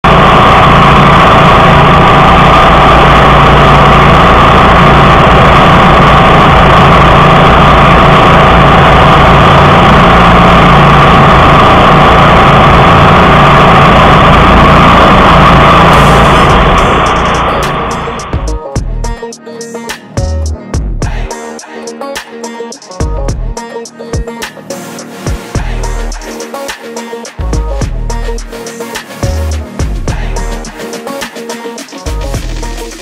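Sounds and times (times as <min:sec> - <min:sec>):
second brush mower running: 0:00.0 - 0:18.5
brush mower engine running: 0:00.0 - 0:19.1, 0:24.6 - 0:33.0.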